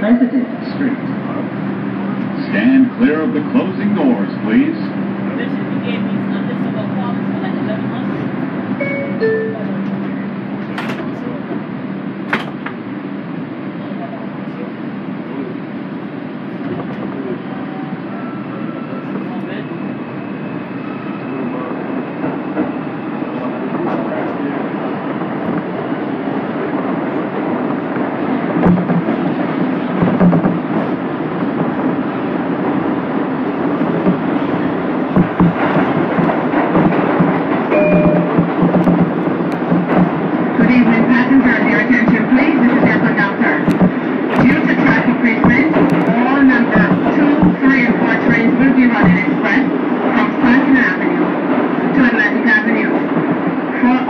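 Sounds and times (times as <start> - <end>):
subway car running rumble: 0.0 - 54.0.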